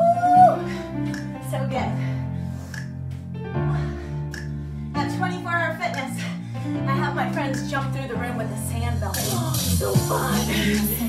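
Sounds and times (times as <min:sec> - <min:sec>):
sustained bass notes: 0:00.0 - 0:11.0.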